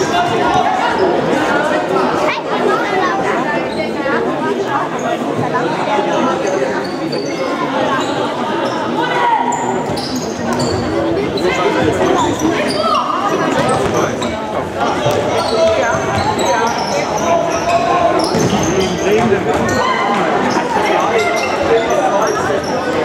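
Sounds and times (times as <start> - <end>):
shoes squeaking: 6.8 - 23.0.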